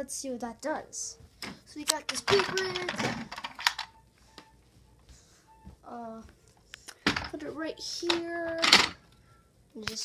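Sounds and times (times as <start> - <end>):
plastic toy pieces clicking: 1.9 - 3.9, 8.0 - 9.0.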